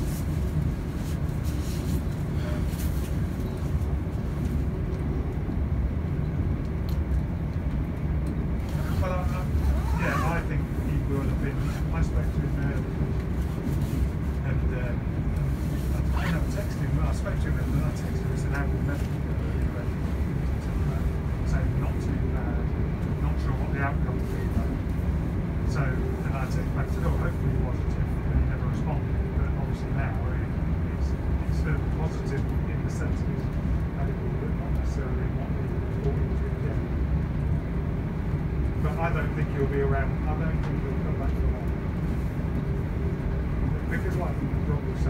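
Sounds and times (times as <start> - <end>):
train running rumble: 0.0 - 45.0.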